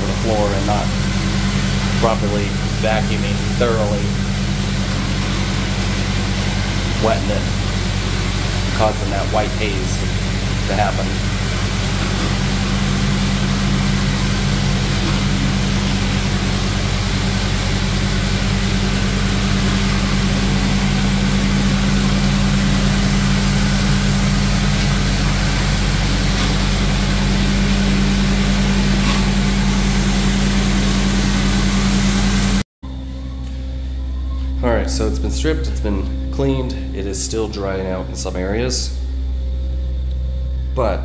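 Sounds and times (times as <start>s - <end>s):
floor buffer motor humming: 0.0s - 38.0s
pad scrubbing wet tile: 23.2s - 31.6s.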